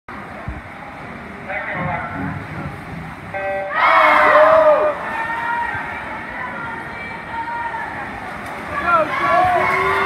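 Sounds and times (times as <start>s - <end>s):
crowd shouting and cheering: 3.3s - 10.0s.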